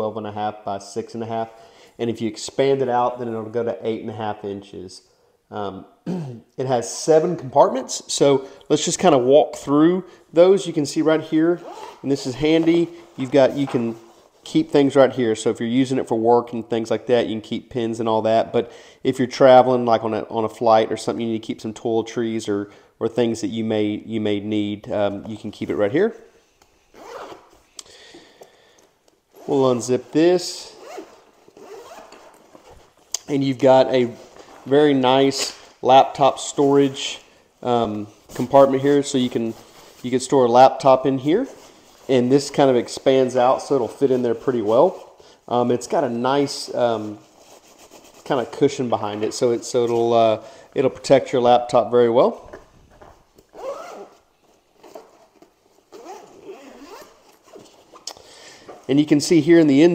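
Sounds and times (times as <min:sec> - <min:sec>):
backpack zipper unzipping: 0:11.6 - 0:12.0, 0:27.0 - 0:27.5, 0:30.7 - 0:32.4, 0:53.5 - 0:54.2, 0:55.9 - 0:57.2.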